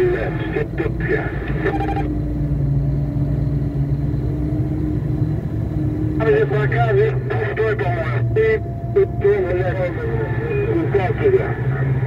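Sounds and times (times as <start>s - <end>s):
people talking: 0.0s - 1.8s, 6.2s - 12.0s
engine humming: 0.0s - 12.0s.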